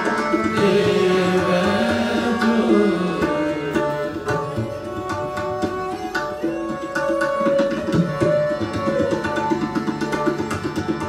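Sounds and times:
harmonium and strings melody: 0.0s - 11.0s
tabla playing: 0.0s - 11.0s.

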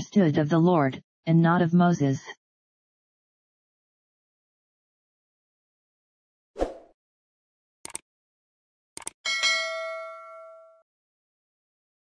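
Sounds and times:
bright bell ding: 9.3s - 10.8s.

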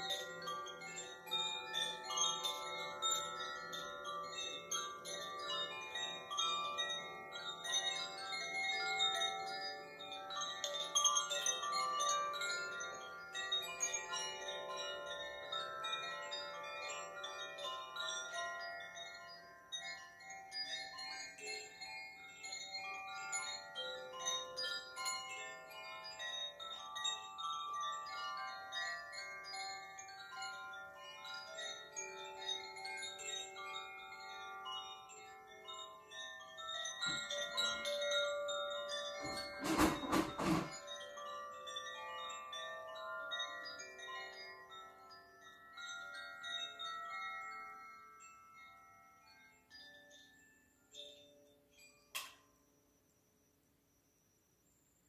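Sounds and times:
rattle of knocks: 37.0s - 37.8s, 39.2s - 41.0s.

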